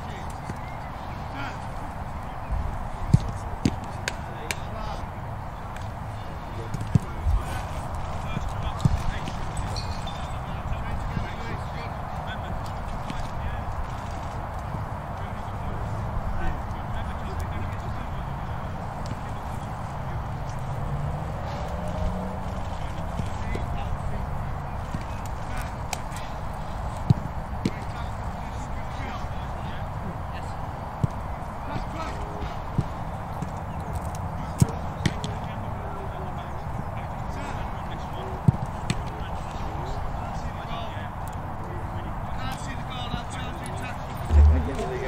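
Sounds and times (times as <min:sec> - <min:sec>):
distant voices: 0:00.0 - 0:45.0
football kick thuds: 0:44.3 - 0:45.0
low rumble and hiss: 0:44.3 - 0:45.0.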